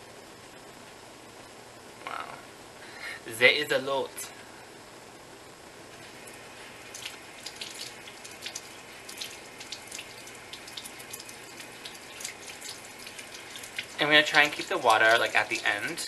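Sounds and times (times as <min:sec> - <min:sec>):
tap water running: 0:06.0 - 0:16.0
small wet clicks: 0:06.9 - 0:16.0.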